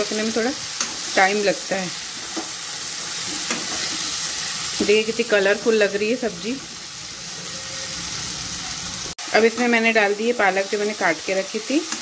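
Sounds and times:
vegetables sizzling in a pan: 0.0s - 12.0s.

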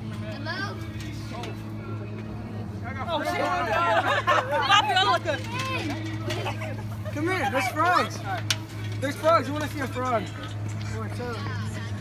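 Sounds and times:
faint voices: 0.0s - 12.0s
low mechanical hum: 0.0s - 12.0s.

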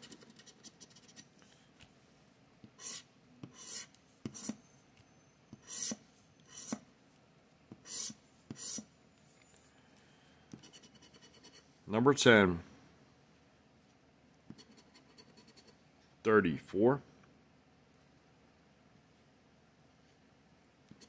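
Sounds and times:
scratching lottery ticket: 0.0s - 1.4s, 2.8s - 4.6s, 14.6s - 15.8s.

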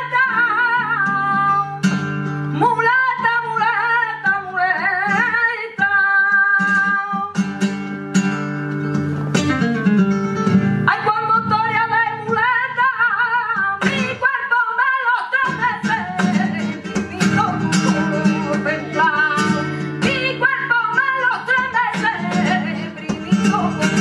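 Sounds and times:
woman singing ornate phrases: 0.0s - 1.8s, 2.5s - 7.3s, 10.9s - 24.0s
flamenco guitar: 0.0s - 24.0s.

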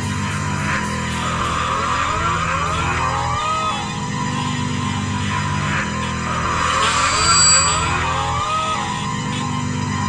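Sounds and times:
electric guitar slides: 6.3s - 8.4s.

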